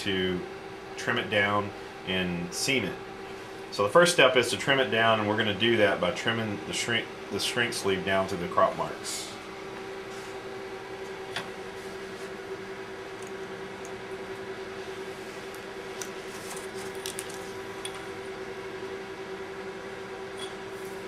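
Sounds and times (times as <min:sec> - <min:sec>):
electrical hum: 0:00.0 - 0:21.0.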